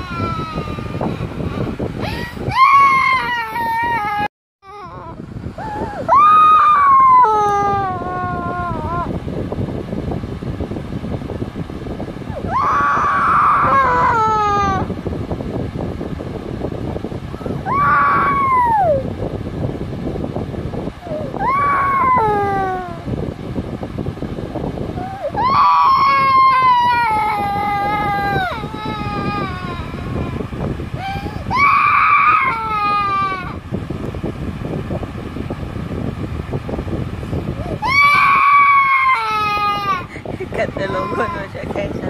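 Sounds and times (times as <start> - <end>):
toddler crying: 25.0 - 30.4, 31.0 - 33.6, 37.8 - 41.7
toddler sobbing: 38.9 - 41.7.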